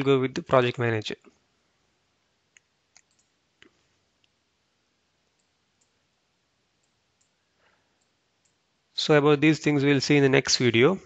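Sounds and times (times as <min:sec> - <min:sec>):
computer mouse clicks: 0:02.5 - 0:04.4, 0:05.3 - 0:06.0, 0:06.8 - 0:07.4, 0:08.0 - 0:08.6.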